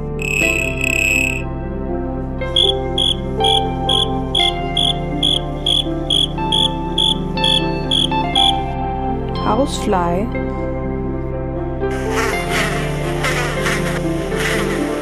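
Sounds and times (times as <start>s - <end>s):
background music sustained tones: 0.0s - 15.0s
cricket chirping: 0.2s - 1.4s, 2.5s - 8.6s.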